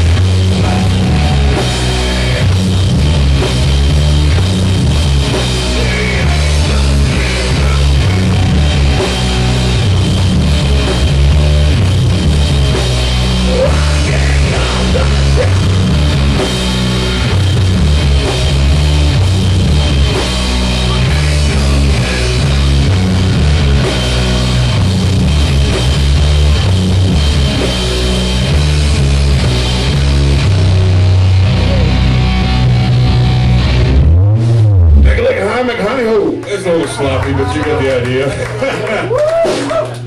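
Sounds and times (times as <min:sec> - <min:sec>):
sludge metal band playing: 0:00.0 - 0:36.3
bending low guitar note: 0:30.5 - 0:35.1.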